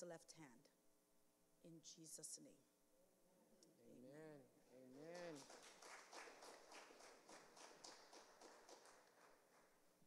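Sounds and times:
faint clapping: 5.0s - 9.8s.

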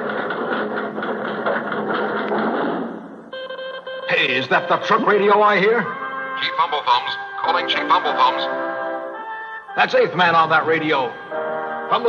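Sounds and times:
fast mechanical clatter: 0.0s - 3.3s.

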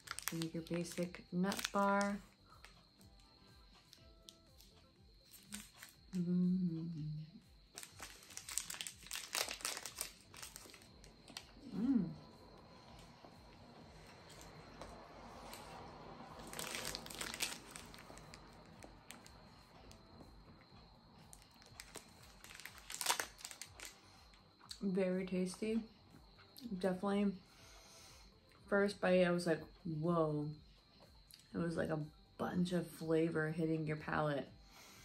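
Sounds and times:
plastic wrapper crinkling: 0.0s - 2.8s, 5.3s - 5.9s, 7.7s - 11.6s, 16.4s - 19.2s, 21.3s - 24.0s
person humming: 6.1s - 7.5s, 11.6s - 12.3s.

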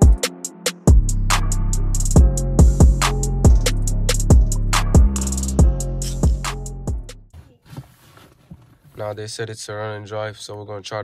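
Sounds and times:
background music: 0.0s - 7.3s
faint background noise: 7.3s - 11.0s.

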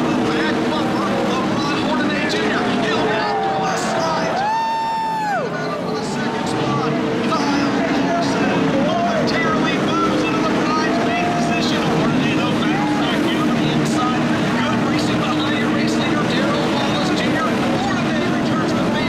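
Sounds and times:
race truck engines droning: 0.0s - 19.0s.

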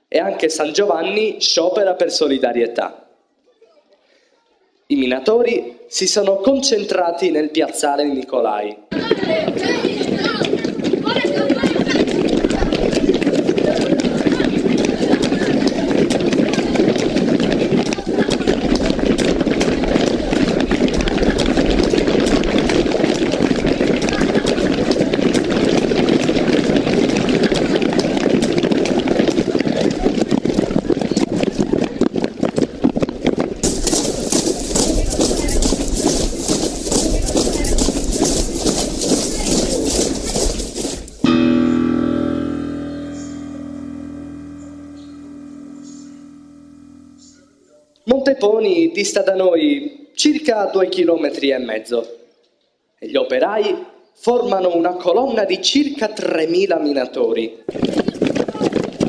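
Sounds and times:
murmur of voices: 8.9s - 28.7s, 33.6s - 41.8s
footsteps on paved street: 8.9s - 41.3s, 57.6s - 59.0s.

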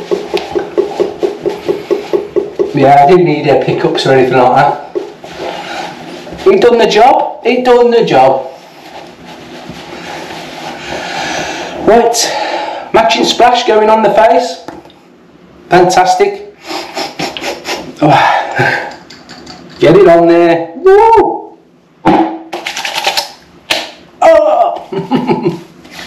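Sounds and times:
towel rubbing on face: 0.0s - 3.0s, 5.0s - 6.7s, 8.5s - 11.8s
man speaking: 1.6s - 5.2s, 6.4s - 8.6s, 11.8s - 14.7s, 19.8s - 21.5s
hands slapping cheeks: 18.9s - 19.8s, 22.5s - 24.0s.

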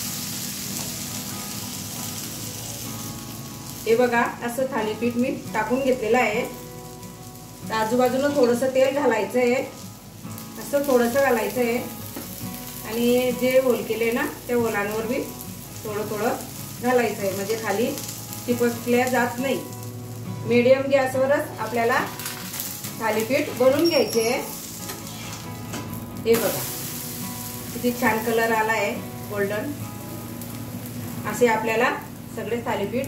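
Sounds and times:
flatbread sizzling on griddle: 0.0s - 33.0s
woman speaking: 20.5s - 22.1s, 26.3s - 26.6s, 27.8s - 29.8s, 31.3s - 33.0s.

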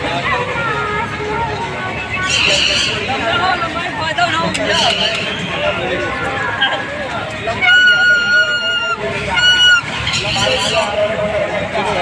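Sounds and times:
shrill horn tone: 7.5s - 11.0s.

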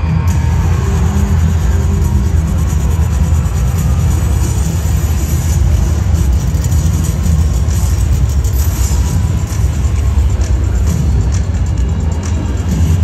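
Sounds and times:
loud music with low rumble: 0.0s - 13.0s.

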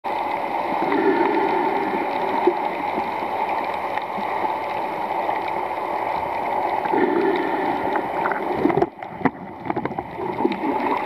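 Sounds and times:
rushing water underwater: 0.0s - 11.0s
faint clicks: 2.0s - 11.0s.

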